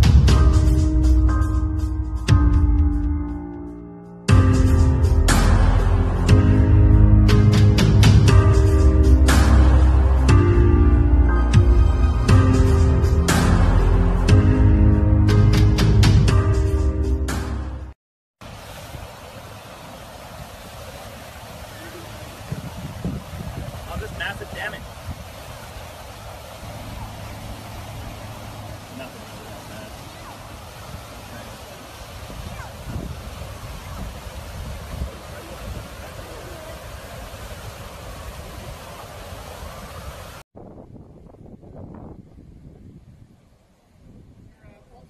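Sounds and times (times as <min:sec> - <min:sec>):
floodwater rushing: 0:00.0 - 0:03.1, 0:04.3 - 0:16.1, 0:18.4 - 0:40.4
wind buffeting microphone: 0:19.9 - 0:45.0
dull outdoor noise: 0:24.9 - 0:34.5.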